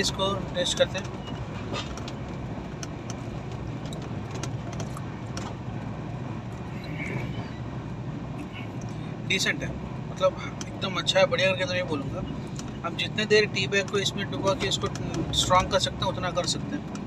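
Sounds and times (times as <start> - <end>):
train rumble inside coach: 0.0 - 17.0
faint clicks and rattles: 0.5 - 5.6, 13.7 - 17.0.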